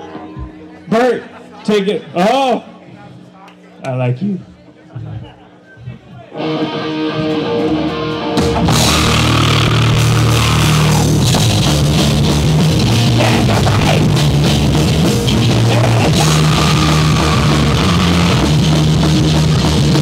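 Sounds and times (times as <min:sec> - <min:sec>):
punk band playing loud: 0:06.4 - 0:20.0.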